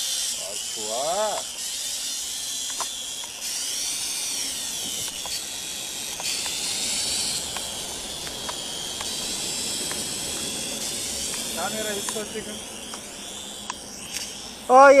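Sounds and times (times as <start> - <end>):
toy drone motors whining: 0.0 - 15.0.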